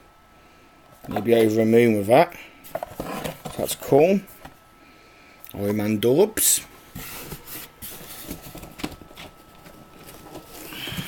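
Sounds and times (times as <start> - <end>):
items moved in cardboard box: 2.7 - 3.8, 6.9 - 11.0
soft plastic rustle: 6.9 - 11.0.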